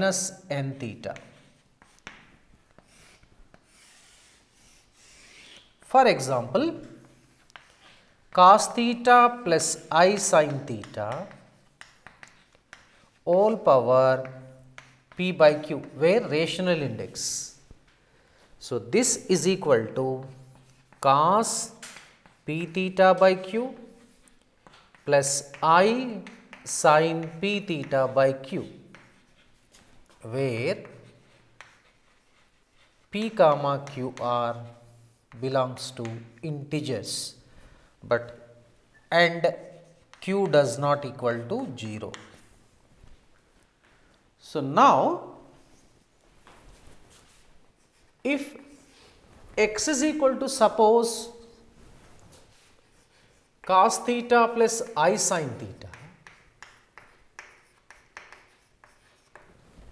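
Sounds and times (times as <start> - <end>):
man speaking: 0.0 - 1.3, 5.8 - 7.0, 8.4 - 11.4, 15.2 - 17.6, 18.6 - 20.4, 21.0 - 21.8, 25.0 - 28.8, 35.4 - 37.4, 38.0 - 42.3, 44.4 - 45.5, 49.6 - 51.5, 53.7 - 56.1
chalk scraping on chalkboard: 1.0 - 17.7, 18.3 - 43.3, 45.4 - 59.9.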